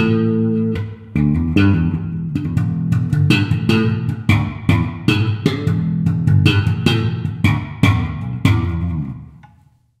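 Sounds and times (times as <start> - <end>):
electric bass note plucked: 0.0 - 9.4.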